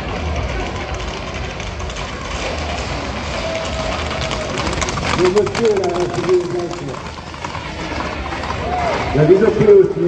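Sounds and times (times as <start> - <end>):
horse hooves galloping on asphalt: 0.0 - 10.0
street crowd din: 0.0 - 10.0.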